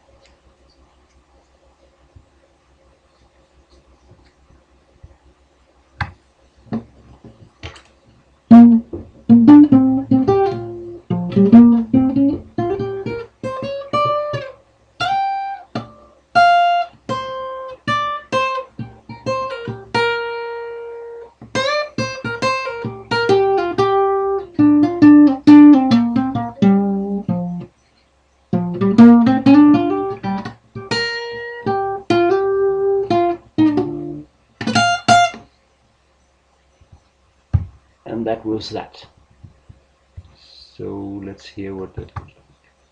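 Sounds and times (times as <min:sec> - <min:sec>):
guitar single-note riff: 0:08.5 - 0:21.3, 0:21.9 - 0:27.6, 0:28.5 - 0:35.4.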